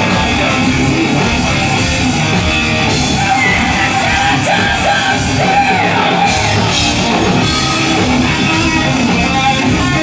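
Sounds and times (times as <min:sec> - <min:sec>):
live metal band playing: 0:00.0 - 0:10.0.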